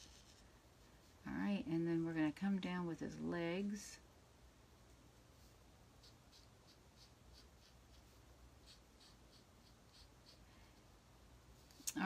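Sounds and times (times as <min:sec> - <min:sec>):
marker scratching on card: 0:06.0 - 0:10.4.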